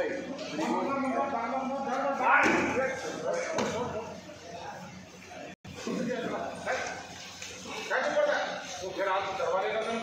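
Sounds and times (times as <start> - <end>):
men's voices in large hall: 0.0 - 4.8, 5.7 - 10.0.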